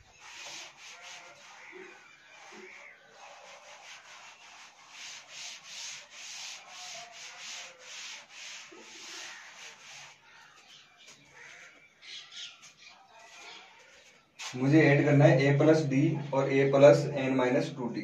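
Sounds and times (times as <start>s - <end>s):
duster rubbing on blackboard: 0.0s - 10.6s.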